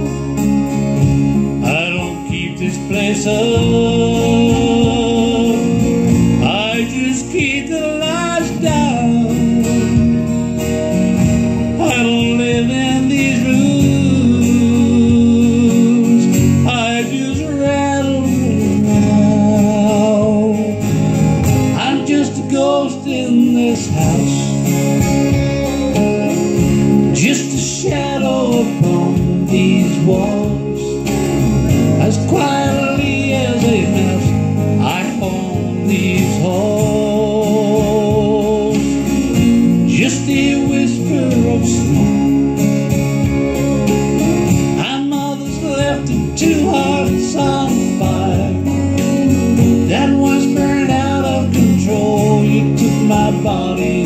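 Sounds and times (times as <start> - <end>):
man singing: 0.0 - 0.4, 1.0 - 10.4, 11.5 - 26.0, 26.9 - 42.8, 44.3 - 54.0
backing music: 0.0 - 54.0
strummed acoustic guitar: 0.0 - 54.0.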